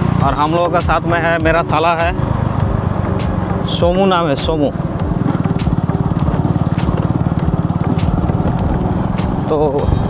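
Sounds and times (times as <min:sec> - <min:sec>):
vehicle engine pulsing: 0:00.0 - 0:10.0.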